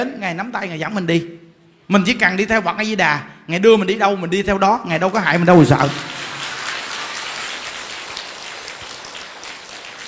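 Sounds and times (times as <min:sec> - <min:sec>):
audience applauding: 0:05.8 - 0:10.0.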